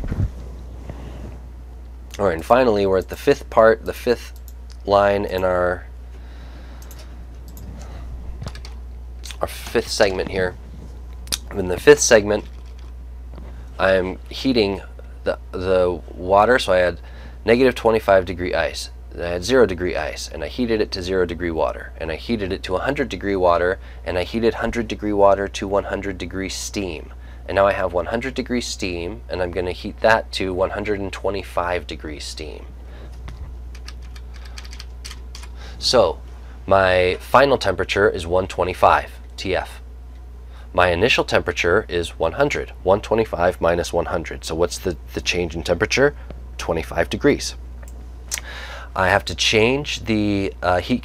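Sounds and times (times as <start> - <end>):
steady low hum: 0.0 - 51.0
computer clicks: 6.8 - 7.7, 33.7 - 35.6.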